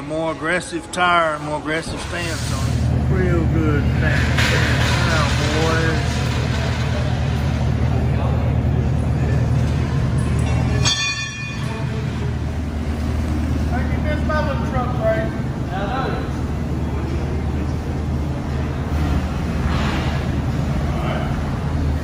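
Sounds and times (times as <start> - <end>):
voices talking: 0.0 - 22.0
car engine idling: 1.7 - 22.0.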